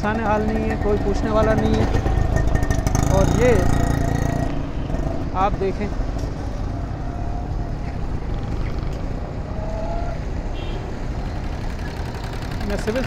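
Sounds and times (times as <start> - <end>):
low rumble of traffic: 0.0 - 13.0.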